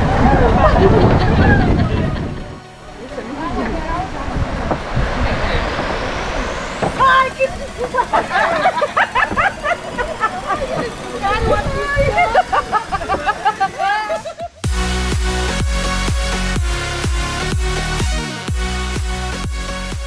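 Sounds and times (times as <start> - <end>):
steady background rumble: 0.0 - 13.7
people talking and calling out: 0.0 - 14.7.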